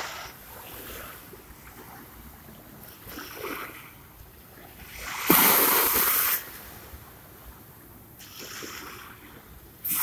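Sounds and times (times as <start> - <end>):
small waves washing ashore: 0.0 - 10.0.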